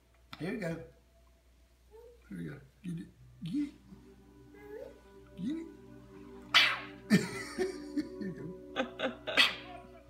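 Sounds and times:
quiet background music: 0.0s - 10.0s
man laughing: 7.1s - 9.6s.

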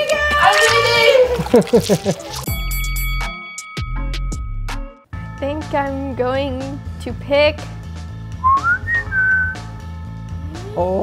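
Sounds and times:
background music with low beat: 1.5s - 11.0s
whistled note sliding up: 8.4s - 9.6s.

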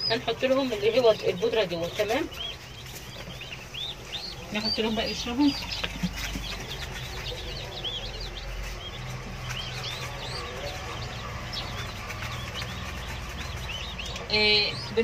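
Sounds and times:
chicks peeping: 0.0s - 15.0s.

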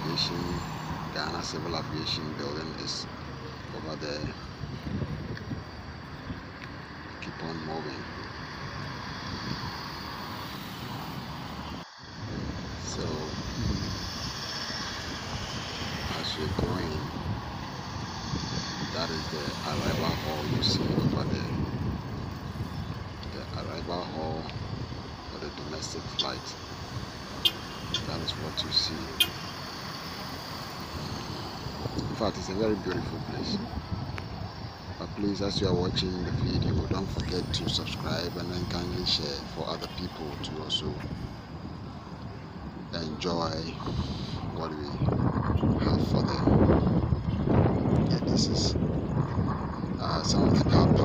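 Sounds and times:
cars driving past: 0.0s - 51.0s.

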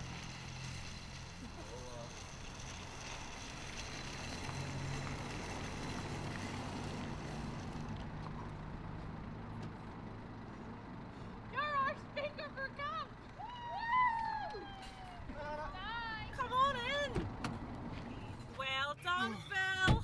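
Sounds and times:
shopping trolley rolling on tarmac: 0.0s - 9.0s.

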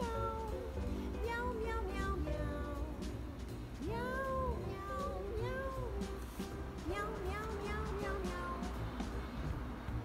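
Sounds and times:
background music: 0.0s - 10.0s
cat meowing: 6.8s - 8.7s.

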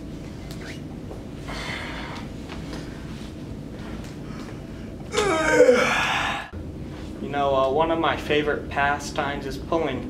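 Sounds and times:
young man gasping and groaning: 5.1s - 6.6s.

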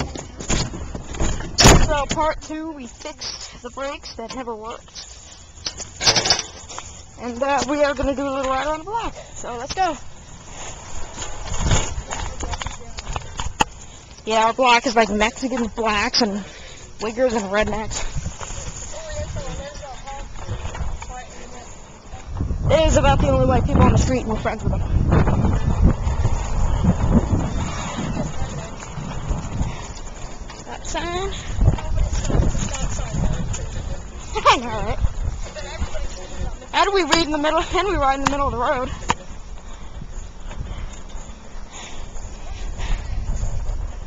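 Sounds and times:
bicycle road rumble: 0.0s - 44.0s
wind buffeting microphone: 7.0s - 44.0s.

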